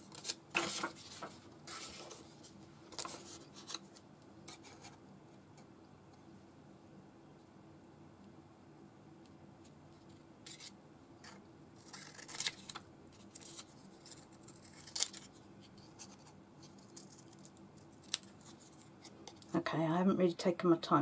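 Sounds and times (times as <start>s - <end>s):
paper handling and scratching: 0.0s - 5.0s, 10.0s - 19.1s
scissors snipping paper: 11.8s - 15.3s.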